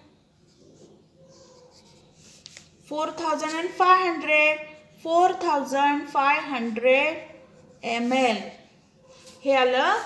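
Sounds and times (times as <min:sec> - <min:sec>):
pencil scratching on paper: 0:00.4 - 0:02.8, 0:06.4 - 0:10.0.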